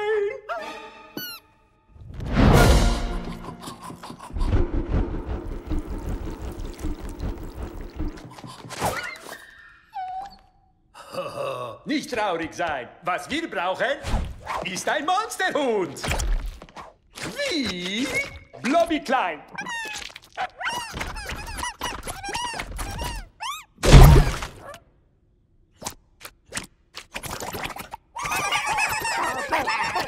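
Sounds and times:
low rumble: 4.4s - 8.2s
cartoon puppy whimpering: 9.0s - 10.6s, 19.5s - 23.8s.

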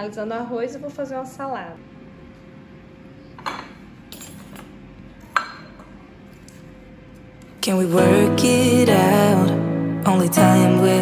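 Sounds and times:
glass dish clinking on counter: 5.3s - 5.9s.

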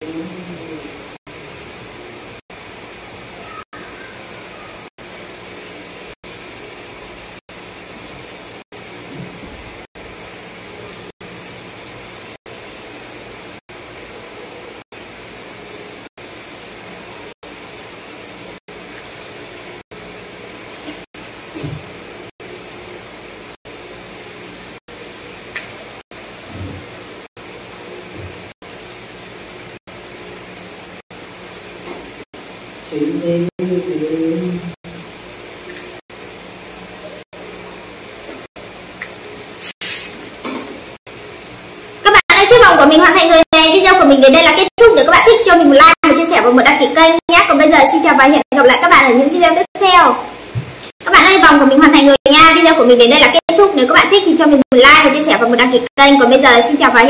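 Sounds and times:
background hum and hiss: 0.0s - 57.0s.

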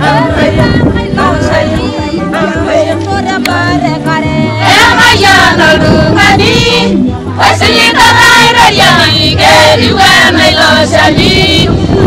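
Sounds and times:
women singing together: 0.0s - 12.0s.

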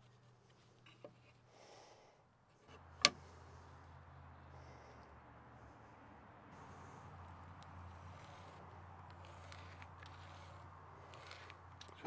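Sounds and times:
pencil scratching along a ruler: 7.8s - 12.0s.

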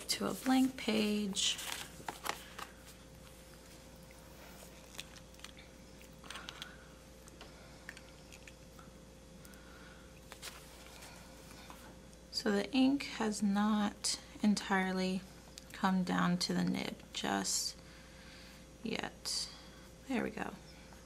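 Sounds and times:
faint steady hum: 0.0s - 21.0s
notebook pages turning: 0.2s - 3.0s.

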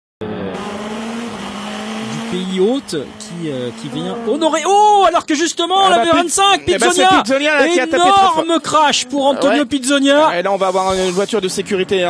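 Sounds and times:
race car engine at high revs: 0.2s - 5.3s
road and wind noise: 0.2s - 12.0s.

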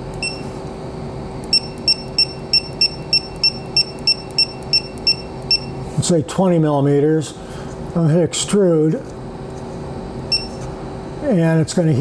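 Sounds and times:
steady low hum: 0.0s - 12.0s
short high touchscreen beeps: 10.3s - 10.6s.

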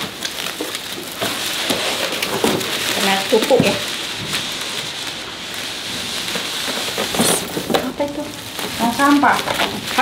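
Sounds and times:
bubble wrap crinkling: 0.0s - 10.0s.

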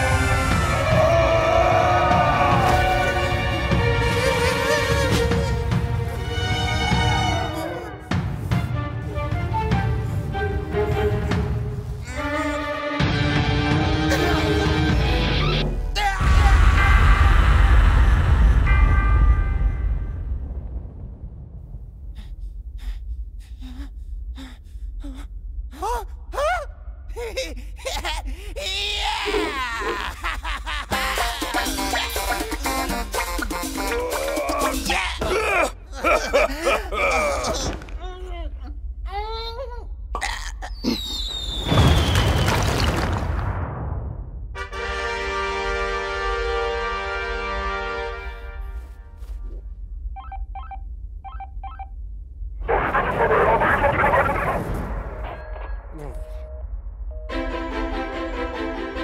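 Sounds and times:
steady low rumble: 16.6s - 28.6s, 50.8s - 57.8s
voiced cry: 25.8s - 32.4s, 33.8s - 37.8s
electronic device beeps: 50.2s - 52.0s.

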